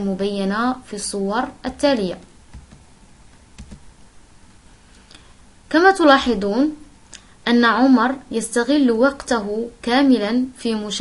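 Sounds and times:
faint computer clicks: 0:02.6 - 0:03.9.

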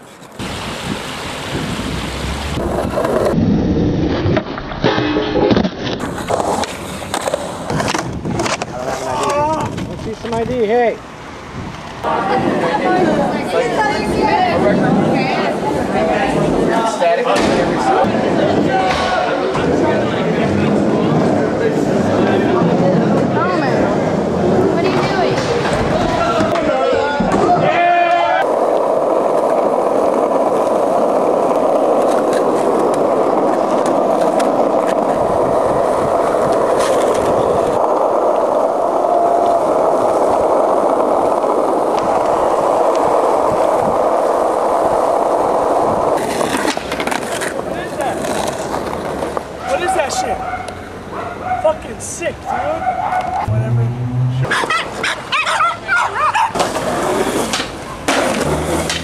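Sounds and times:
skateboard wheels on asphalt: 0:00.0 - 0:04.8, 0:05.4 - 0:53.6, 0:54.4 - 0:59.0
skateboard wheels rolling: 0:00.0 - 0:59.0
voices: 0:12.0 - 0:28.5, 0:49.6 - 0:56.6.

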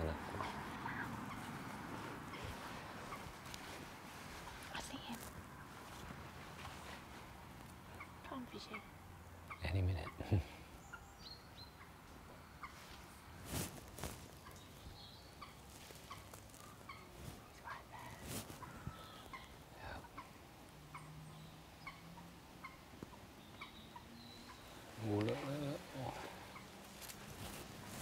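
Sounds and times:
faint bird chirps: 0:14.3 - 0:20.3, 0:20.9 - 0:27.5.

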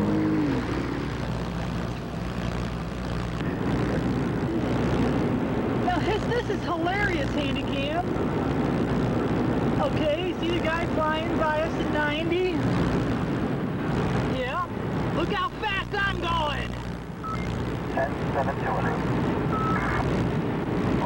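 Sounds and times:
car engine and road noise: 0:00.0 - 0:21.0.

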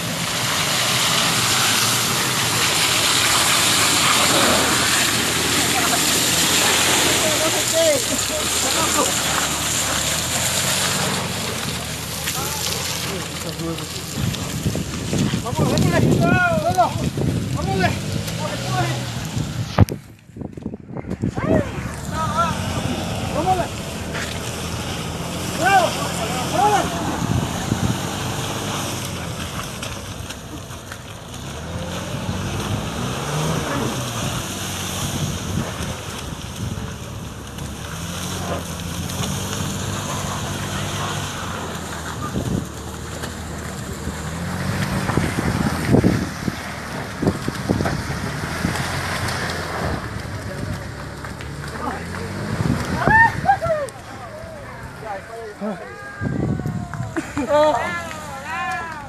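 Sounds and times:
vehicle engine revving: 0:00.0 - 0:55.9
wind buffeting microphone: 0:14.1 - 0:24.1, 0:27.0 - 0:28.5, 0:44.4 - 0:50.8
people calling out: 0:52.9 - 0:59.0.

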